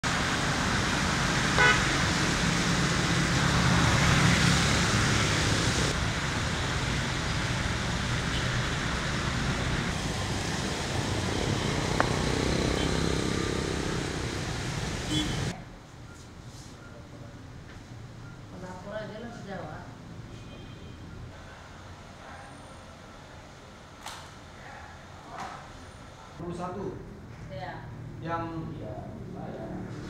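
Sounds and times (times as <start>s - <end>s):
road traffic noise: 0.0s - 30.0s
car horn toot: 1.6s - 1.9s, 12.8s - 13.1s, 15.1s - 15.5s.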